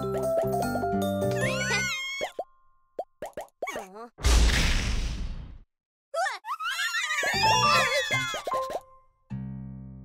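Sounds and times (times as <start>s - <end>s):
upbeat cartoon ensemble music: 0.0s - 1.8s, 7.3s - 8.8s
cartoon plops: 2.3s - 3.8s.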